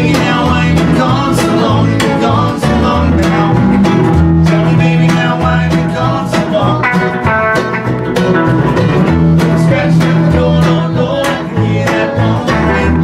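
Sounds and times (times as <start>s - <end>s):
double bass line: 0.0s - 13.0s
small band playing live: 0.0s - 13.0s.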